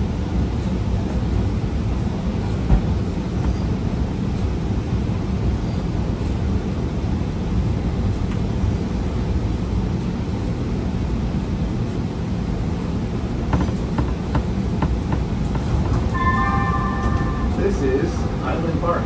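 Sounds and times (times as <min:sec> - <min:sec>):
train rumble on track: 0:00.0 - 0:19.0
steady high tones: 0:16.1 - 0:19.0.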